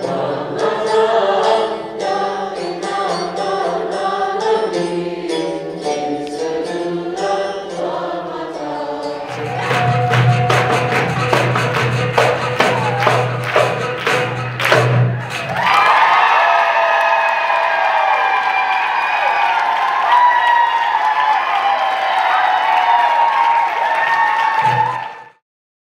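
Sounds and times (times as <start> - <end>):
audience cheering and applauding: 9.3 - 25.4.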